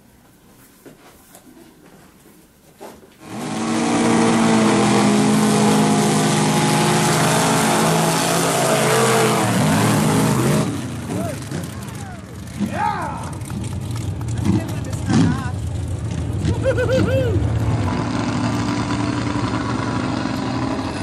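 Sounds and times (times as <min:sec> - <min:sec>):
truck engines revving hard: 0:03.2 - 0:21.0.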